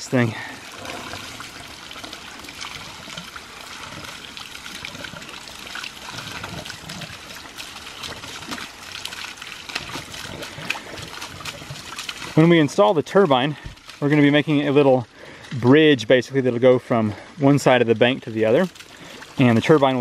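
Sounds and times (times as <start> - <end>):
water jet splashing onto rocks: 0.6 - 14.8.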